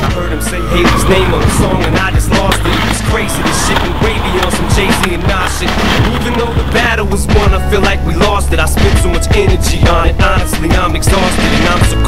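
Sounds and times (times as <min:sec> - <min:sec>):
hip-hop music: 0:00.0 - 0:12.0
skateboard clacks: 0:00.0 - 0:12.0
skateboard landing and rolling: 0:00.0 - 0:12.0.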